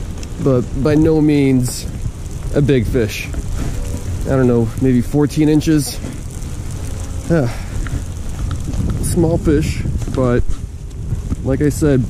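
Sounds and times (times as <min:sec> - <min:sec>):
rain hiss: 0:00.0 - 0:12.0
wind buffeting microphone: 0:00.0 - 0:12.0.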